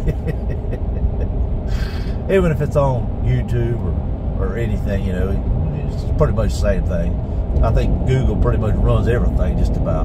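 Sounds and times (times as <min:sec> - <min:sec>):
road and engine rumble inside vehicle: 0:00.0 - 0:10.0.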